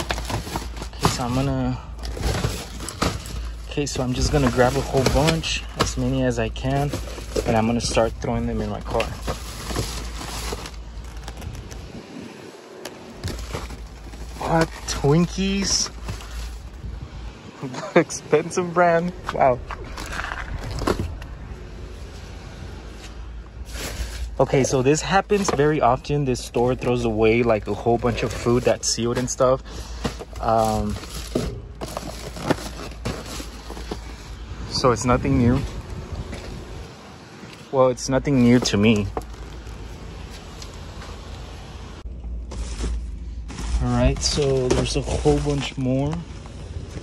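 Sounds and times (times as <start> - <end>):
cardboard boxes knocking and rustling: 0.0 - 11.5, 13.2 - 16.6, 28.0 - 34.3
cardboard and plastic bags rustling: 0.0 - 17.1, 17.7 - 22.3, 22.9 - 47.0
steady low rumble: 0.0 - 47.0.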